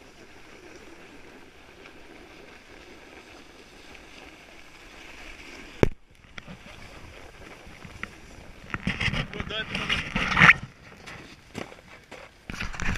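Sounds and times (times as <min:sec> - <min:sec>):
snowboard scraping over snow: 0:00.0 - 0:12.9.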